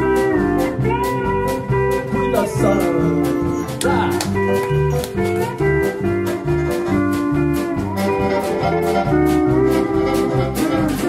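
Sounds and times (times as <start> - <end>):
band playing a polka: 0.0 - 11.0
drum strokes: 0.0 - 11.0
walking bass line: 0.0 - 11.0.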